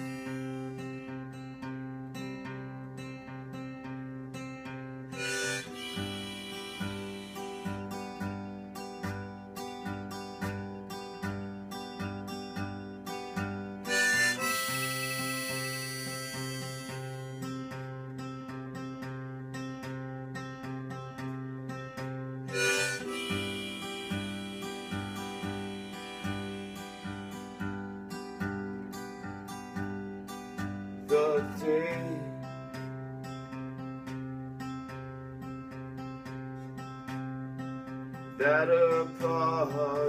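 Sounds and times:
harmonica: 0.0 - 1.8, 5.1 - 18.6, 22.0 - 34.3
strummed acoustic guitar: 0.0 - 40.0.

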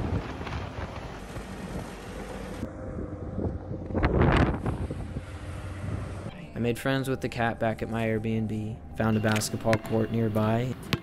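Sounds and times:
wind buffeting microphone: 0.0 - 6.3
engine low rumble: 0.0 - 9.6.

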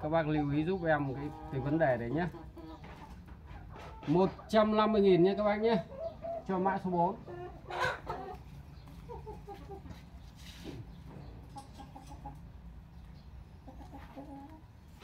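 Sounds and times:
chickens clucking: 0.0 - 15.0.

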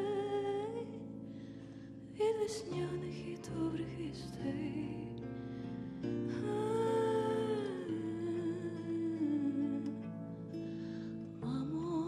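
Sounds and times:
woman singing slow melody: 0.0 - 12.0.

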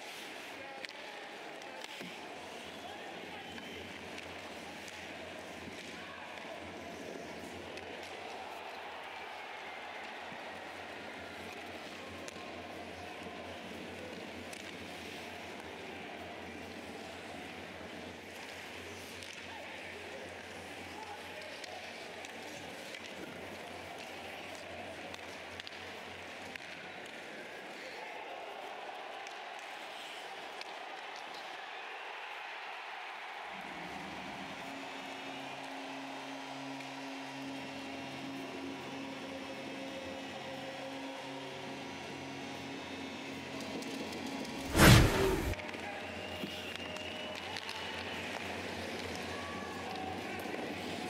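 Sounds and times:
arena crowd noise: 0.0 - 43.9, 44.5 - 51.0.

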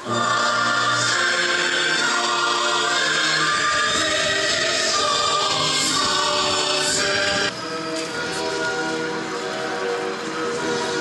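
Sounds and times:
choir chanting held notes: 0.0 - 7.6.

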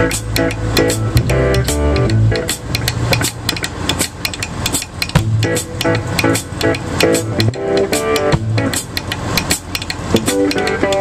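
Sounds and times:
guitar: 0.0 - 4.0, 4.7 - 11.0
bass guitar: 0.0 - 11.0
drum kit cymbal beat: 0.0 - 11.0.

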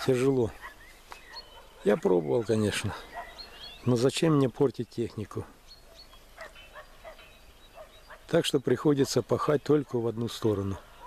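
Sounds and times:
thin bird chirps: 0.0 - 11.0
distant animal calls: 0.4 - 3.9, 5.8 - 8.4.

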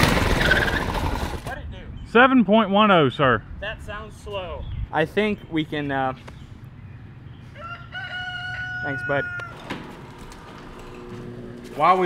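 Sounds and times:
rooster crowing: 7.5 - 9.7.

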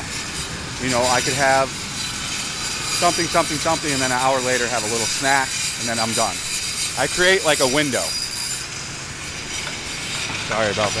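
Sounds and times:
vehicle engines running: 0.0 - 11.0.

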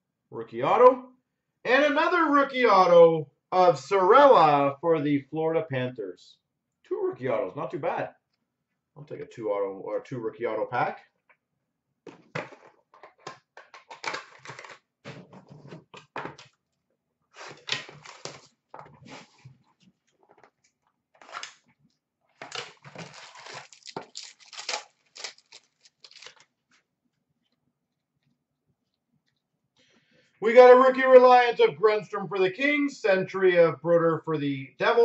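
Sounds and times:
wrapper crinkling and tearing: 17.4 - 18.6, 21.2 - 21.6, 22.4 - 26.7.

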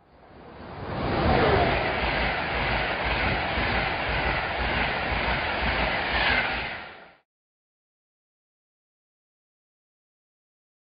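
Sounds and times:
train running on track: 0.0 - 7.2.

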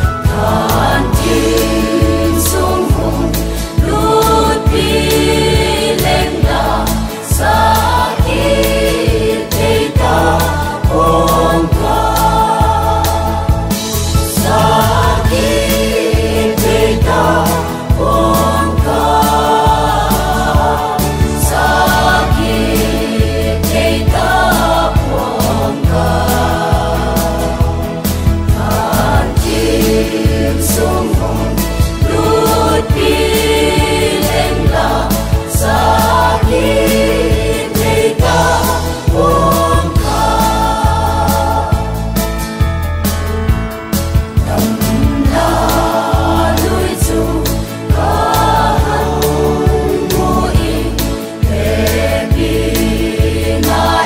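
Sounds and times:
choir singing gospel song: 0.0 - 54.0
instrumental backing with low beat: 0.0 - 54.0.

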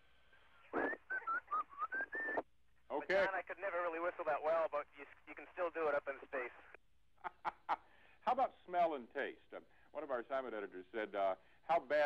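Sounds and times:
man whistling over radio: 0.7 - 2.4.

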